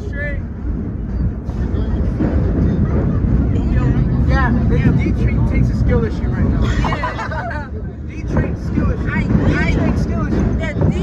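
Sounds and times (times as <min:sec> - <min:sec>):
faint passenger voices: 0:00.0 - 0:11.0
subway train rumbling: 0:00.0 - 0:11.0.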